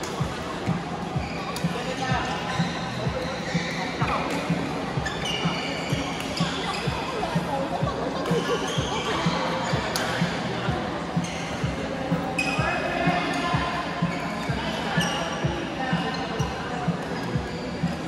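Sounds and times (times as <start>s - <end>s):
sneakers squeaking on court: 0.0s - 10.4s, 11.2s - 18.0s
background chatter: 0.0s - 18.0s.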